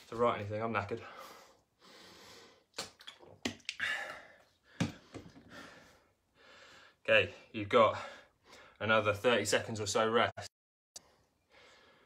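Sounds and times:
man breathing hard: 1.0 - 2.7, 3.8 - 7.0, 11.4 - 12.0.

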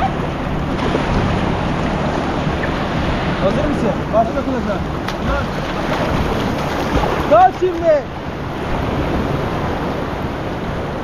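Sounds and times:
surf splashing and churning: 0.0 - 11.0
wind buffeting microphone: 0.0 - 11.0.

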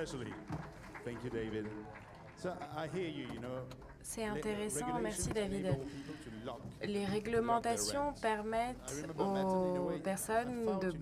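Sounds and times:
person talking: 4.2 - 6.0.

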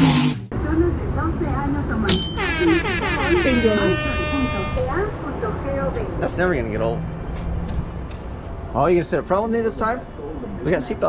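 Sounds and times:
air horn blast: 2.4 - 5.0.

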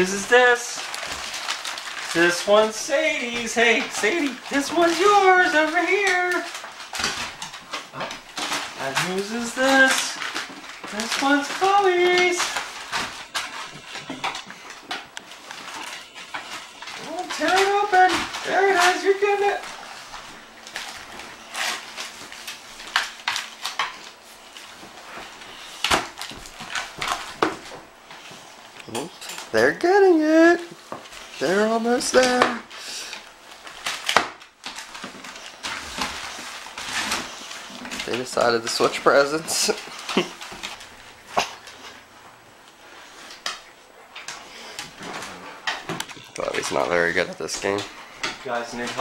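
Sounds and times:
wrapping paper ripping: 0.0 - 43.6, 44.3 - 49.0
plastic packaging crinkling: 0.0 - 49.0.

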